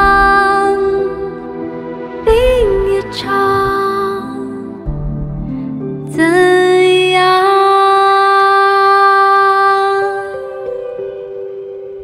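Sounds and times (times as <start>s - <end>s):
karaoke backing track: 0.0s - 11.7s
woman singing a long note: 2.2s - 4.8s.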